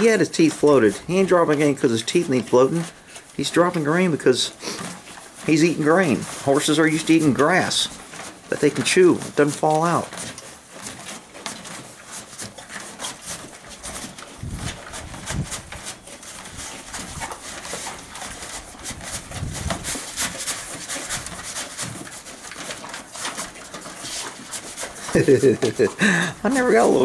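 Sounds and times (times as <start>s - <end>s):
horse chewing grain: 0.0s - 27.0s.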